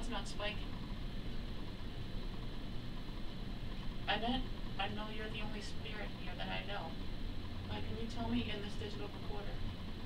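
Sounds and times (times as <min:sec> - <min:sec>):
room background rumble and hiss: 0:00.0 - 0:10.0.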